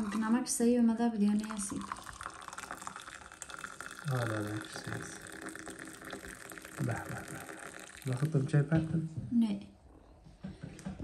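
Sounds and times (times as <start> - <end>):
liquid pouring: 0.0 - 0.5, 1.3 - 8.6.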